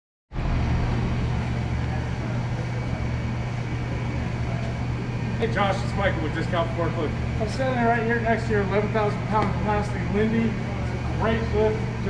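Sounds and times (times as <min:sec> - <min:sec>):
low mechanical hum: 0:00.3 - 0:12.0.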